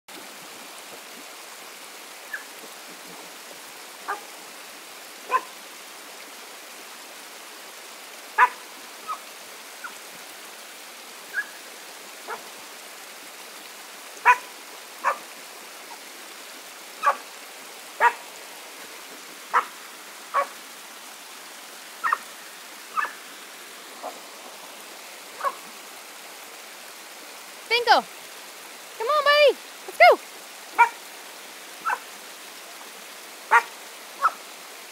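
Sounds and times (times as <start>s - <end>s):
dog yipping: 14.2s - 15.2s, 23.0s - 23.2s, 33.5s - 34.4s.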